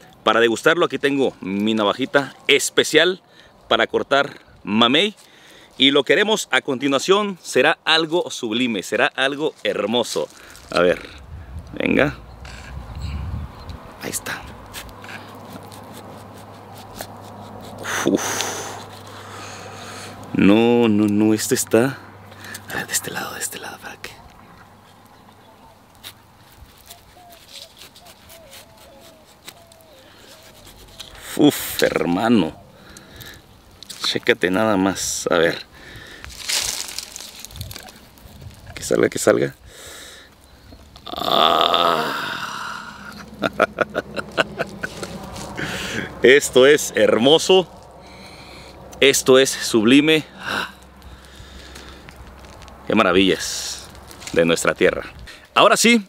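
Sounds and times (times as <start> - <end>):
knife scraping fruit skin: 14.6 - 19.4, 26.0 - 32.2
man laughing softly: 17.3 - 18.8, 42.1 - 46.2.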